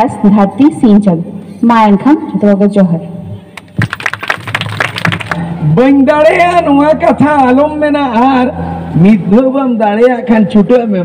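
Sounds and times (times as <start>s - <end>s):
people clapping: 3.6s - 5.4s.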